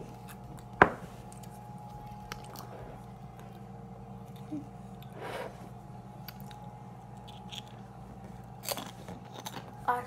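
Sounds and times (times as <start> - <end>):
steady low hum: 0.0 - 10.0
chips crunching while chewed: 1.3 - 5.1, 6.2 - 9.9.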